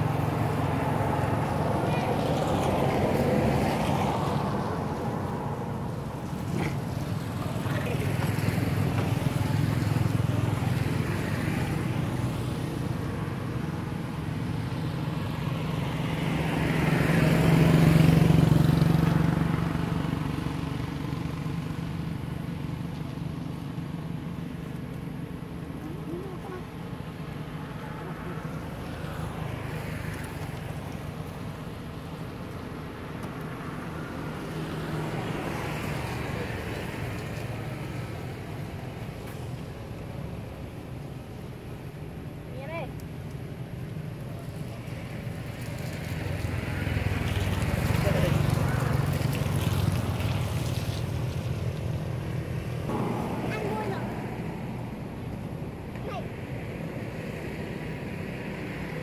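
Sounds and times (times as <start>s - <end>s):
low engine hum: 0.0s - 59.0s
vehicles passing on road: 0.0s - 59.0s.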